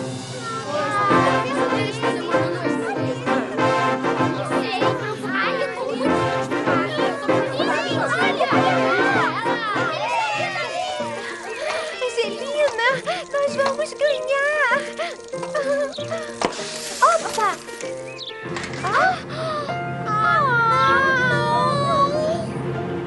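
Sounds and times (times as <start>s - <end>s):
cartoon background music: 0.1s - 22.8s
children calling out: 0.3s - 18.2s, 18.8s - 22.6s.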